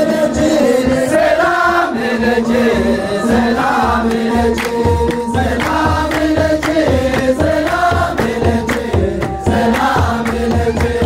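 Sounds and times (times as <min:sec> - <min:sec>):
hand drum beats: 0:00.0 - 0:11.0
voices chanting a hymn in unison: 0:00.0 - 0:11.0.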